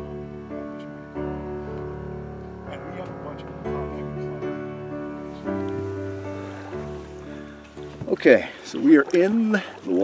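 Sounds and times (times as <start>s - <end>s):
sustained chord music: 0.0s - 10.0s.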